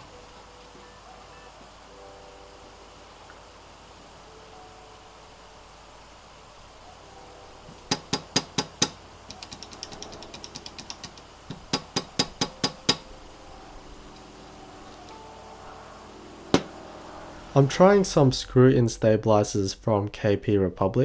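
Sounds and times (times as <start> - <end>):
keyboard switches clacking: 7.9 - 13.0.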